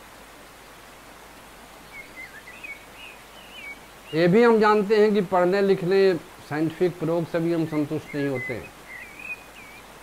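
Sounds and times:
background hiss: 0.0 - 10.0
bird chirps: 1.9 - 4.4, 7.7 - 9.9.

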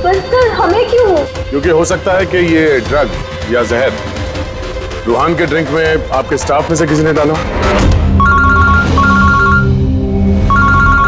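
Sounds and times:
background music: 0.0 - 11.0
phone ringtone electronic trill: 8.2 - 9.8, 10.5 - 11.0.

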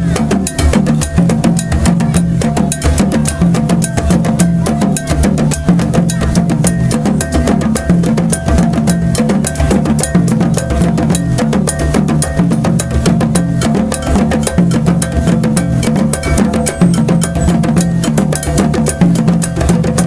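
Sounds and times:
bass drums beaten with sticks: 0.0 - 20.0
hand drums playing fast rhythm: 0.0 - 20.0
metal bell ringing: 0.0 - 20.0.

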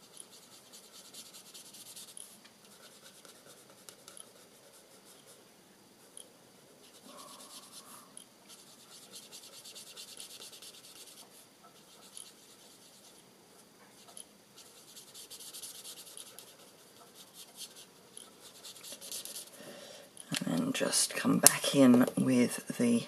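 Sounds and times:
marker scratching on cardstock: 0.0 - 5.4, 6.8 - 13.2, 14.0 - 19.6.

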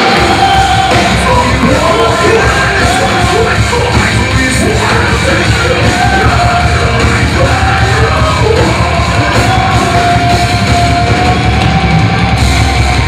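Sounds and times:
metalcore band playing: 0.0 - 13.0.

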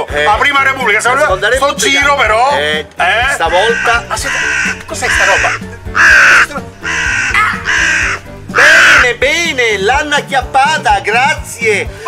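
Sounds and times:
background music: 0.0 - 12.0
crow cawing: 3.5 - 9.3.

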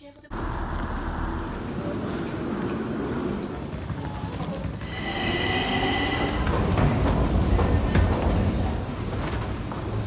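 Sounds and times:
train rumble: 4.7 - 10.0
high-pitched wheel squeal: 4.8 - 7.2.

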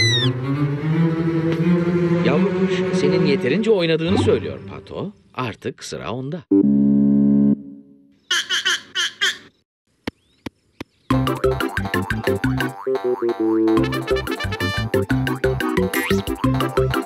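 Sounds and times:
cartoon bird chirps: 0.0 - 0.4, 8.2 - 9.6
bouncy cartoon music: 0.0 - 4.6, 11.1 - 17.0.

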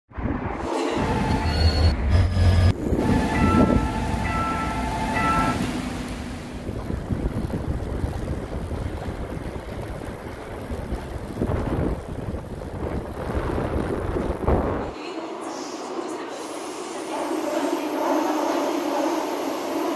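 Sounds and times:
wind rushing over microphone: 0.1 - 1.4, 6.6 - 15.0
level-crossing warning bell: 0.7 - 6.7.

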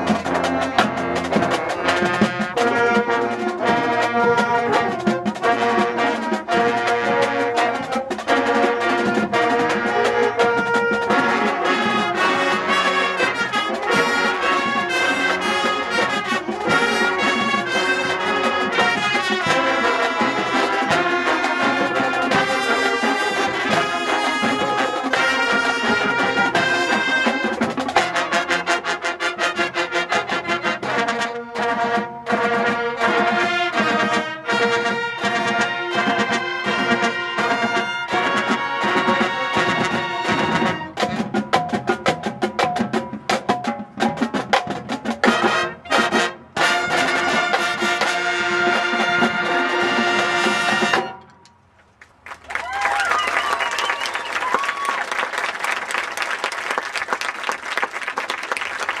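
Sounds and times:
marching band playing: 0.0 - 51.4, 52.2 - 59.0
clapping and cheering: 52.0 - 59.0.

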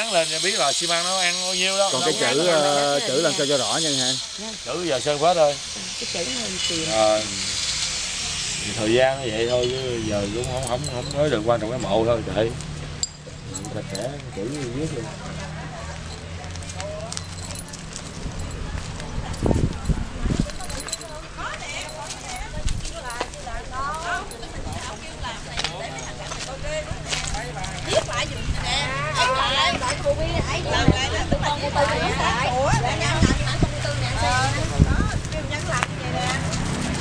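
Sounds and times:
indistinct voices talking: 0.0 - 37.0
man speaking: 0.6 - 5.4.

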